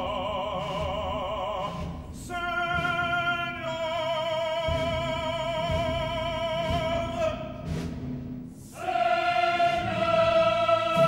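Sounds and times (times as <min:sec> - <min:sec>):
opera choir singing: 0:00.0 - 0:07.8, 0:08.6 - 0:11.0.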